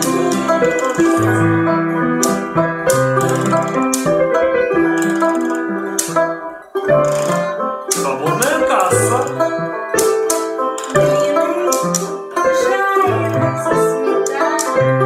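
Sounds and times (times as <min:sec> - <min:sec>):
banjo strummed and picked: 0:00.0 - 0:15.0.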